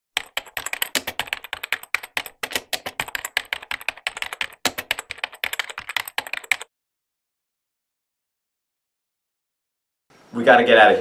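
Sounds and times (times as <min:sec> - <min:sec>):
rapid typing on keyboard: 0:00.2 - 0:06.7.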